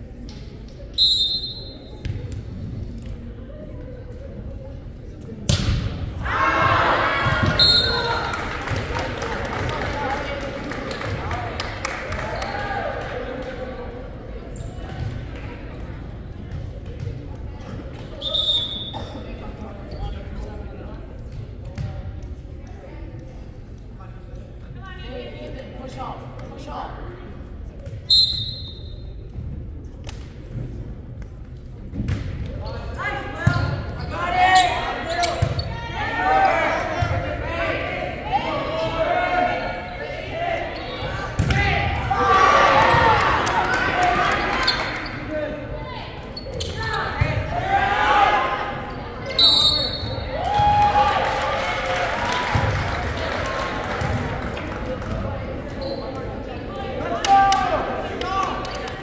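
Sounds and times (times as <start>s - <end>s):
short high whistle: 28.1s - 29.0s, 49.4s - 50.2s.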